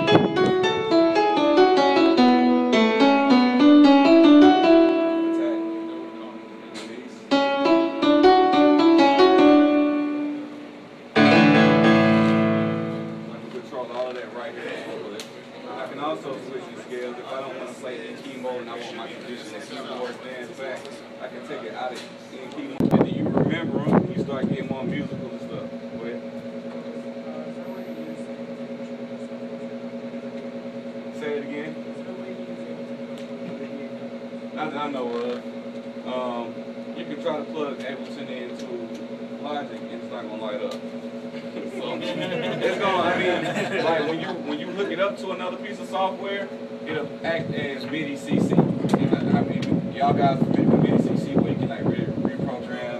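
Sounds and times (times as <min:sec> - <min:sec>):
keyboard piano notes: 0:00.0 - 0:14.4
sustained keyboard chord: 0:00.0 - 0:14.5, 0:22.8 - 0:52.2
two-note electrical hum: 0:00.0 - 0:52.9
faint voices murmuring: 0:13.1 - 0:35.5, 0:36.4 - 0:52.9.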